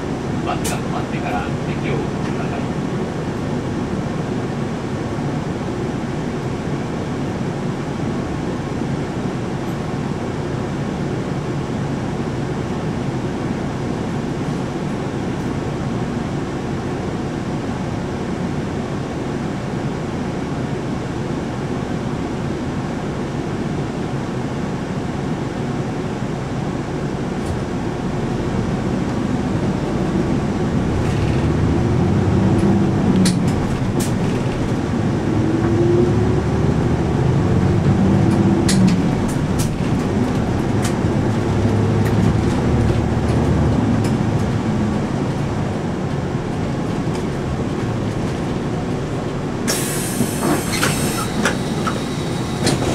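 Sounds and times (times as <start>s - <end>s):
bus engine idling and revving: 0.0s - 52.9s.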